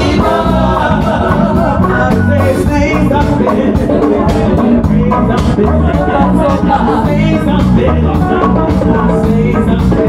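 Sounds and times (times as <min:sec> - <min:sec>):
backing vocalists: 0:00.0 - 0:10.0
live band music: 0:00.0 - 0:10.0
woman singing lead: 0:00.0 - 0:10.0.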